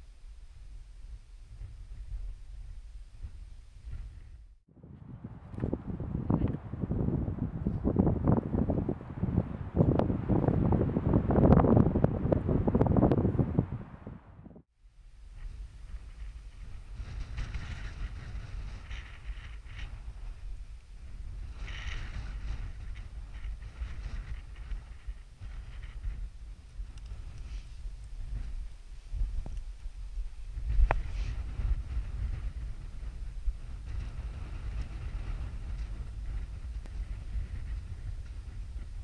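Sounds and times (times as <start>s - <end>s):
wind buffeting microphone: 0.0s - 39.0s.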